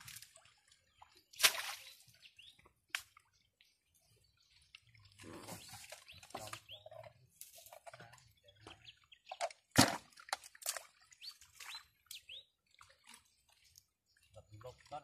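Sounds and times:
water splashing and slapping: 0.0s - 15.0s.

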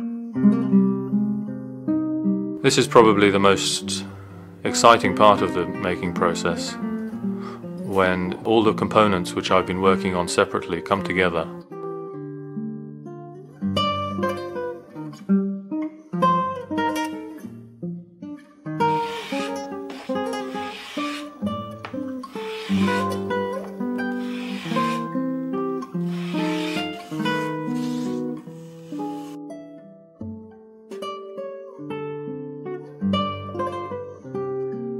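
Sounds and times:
acoustic guitar plucked melody: 0.0s - 34.9s.

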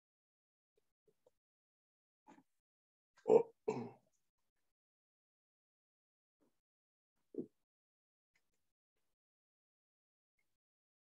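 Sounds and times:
woman clearing her throat: 3.3s - 4.0s.

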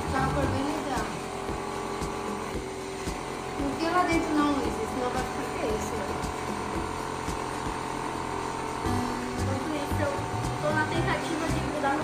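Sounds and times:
cotton candy machine whirring: 0.0s - 12.0s.

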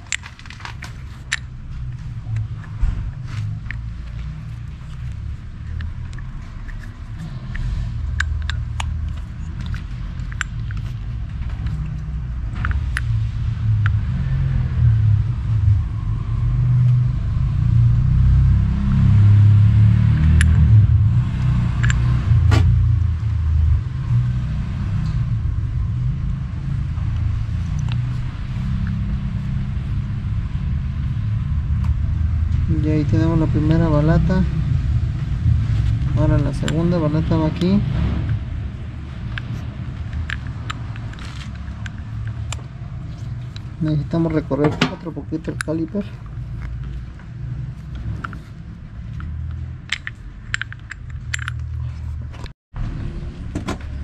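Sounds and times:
brake pads clicking and tapping: 0.0s - 14.0s, 35.8s - 38.4s, 39.2s - 52.5s
continuous low rumble: 0.0s - 54.0s.

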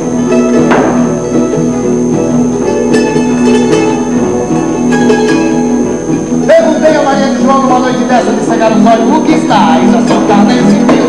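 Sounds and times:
acoustic plucked strings playing: 0.0s - 11.0s.

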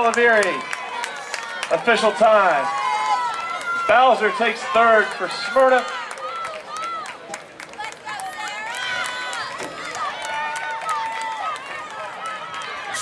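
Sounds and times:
spectators talking and calling out: 0.0s - 13.0s.

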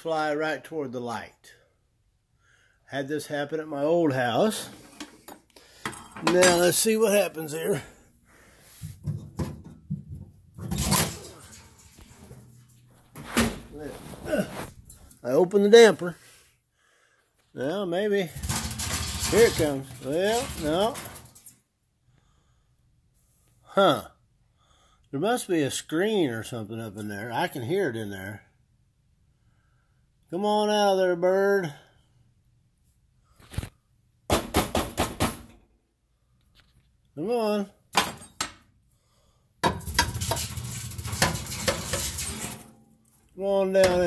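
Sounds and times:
man's voice: 6.2s - 7.9s, 13.7s - 16.2s, 19.2s - 21.1s, 43.4s - 44.0s
fireplace tool scraping metal: 18.3s - 21.4s, 39.6s - 42.8s.

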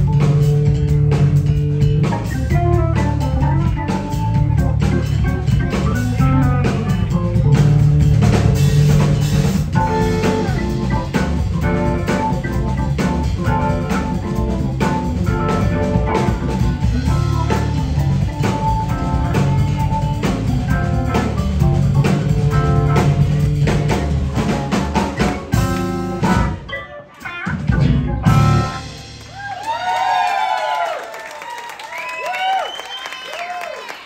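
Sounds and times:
keyboards: 0.0s - 29.3s
electric guitar: 0.0s - 30.3s
drum kit: 0.0s - 31.0s.

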